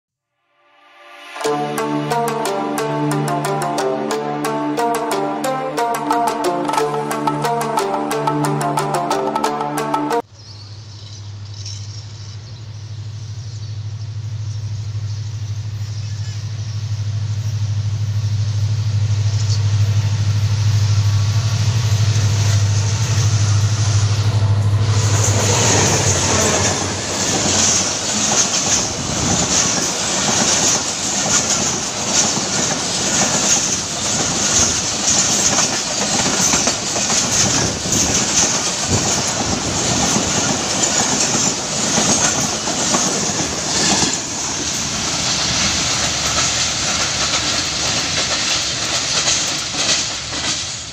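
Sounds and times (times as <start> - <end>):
locomotive drone: 1.0 - 50.9
train wheels clattering over rail joints: 25.1 - 50.9.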